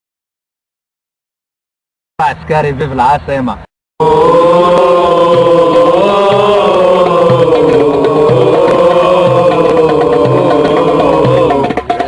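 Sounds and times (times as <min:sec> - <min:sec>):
crowd chanting in unison: 0:04.0 - 0:11.8
drum beating: 0:04.0 - 0:12.0.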